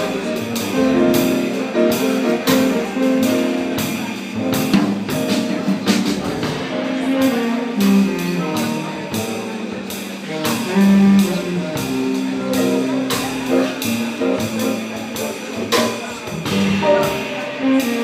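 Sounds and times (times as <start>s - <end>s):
double bass: 0.0s - 18.0s
drum and cymbal strikes: 0.0s - 18.0s
piano: 0.0s - 18.0s
tenor saxophone: 6.6s - 18.0s.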